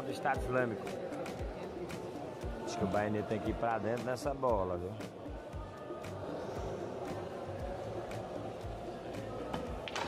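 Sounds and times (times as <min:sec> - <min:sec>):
background music: 0:00.0 - 0:10.0
crowd murmur: 0:00.0 - 0:10.0.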